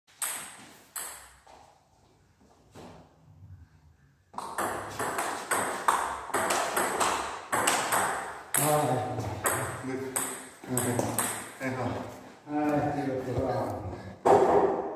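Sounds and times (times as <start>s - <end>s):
table tennis ball hits: 0.1s - 1.4s, 4.4s - 11.6s, 14.2s - 14.9s.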